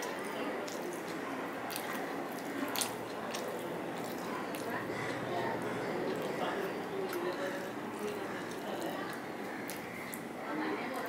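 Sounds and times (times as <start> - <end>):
man chewing with mouth open: 0.0 - 10.4.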